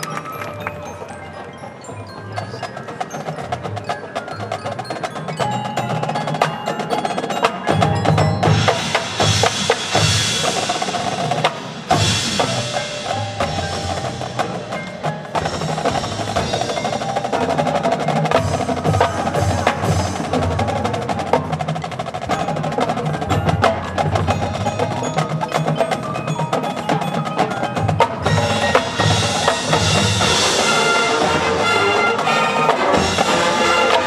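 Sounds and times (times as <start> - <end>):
drums: 0.0 - 34.0
marching band playing: 0.0 - 34.0.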